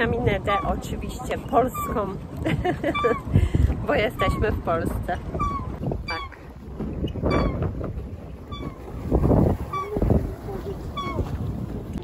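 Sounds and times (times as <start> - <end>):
wind rumbling on microphone: 0.0 - 12.0
pedal boat mechanism squeaking: 3.9 - 7.8, 8.4 - 8.9.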